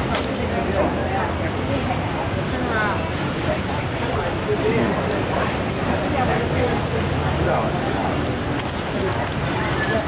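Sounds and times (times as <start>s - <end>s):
indistinct chatter of people: 0.0s - 10.0s
passing traffic: 0.0s - 10.0s.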